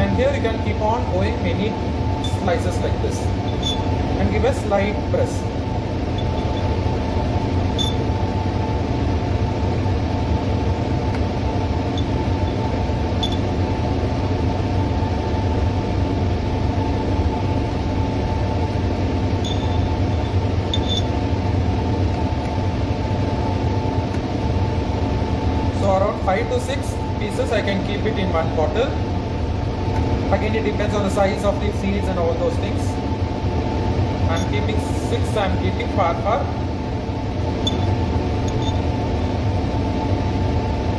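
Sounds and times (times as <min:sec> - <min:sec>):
blower humming: 0:00.0 - 0:40.9.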